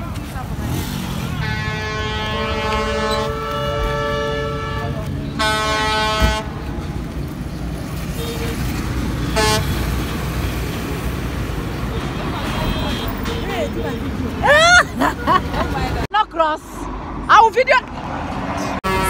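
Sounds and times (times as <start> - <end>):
traffic rumble: 0.0 - 19.0
vehicle horns honking: 1.1 - 6.6, 8.1 - 10.0, 11.9 - 14.2, 18.8 - 19.0.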